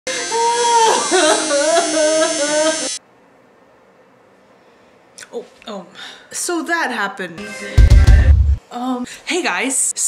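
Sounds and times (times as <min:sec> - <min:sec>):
electric tattoo machine buzzing: 0:00.1 - 0:03.0
woman crying out: 0:00.2 - 0:02.9.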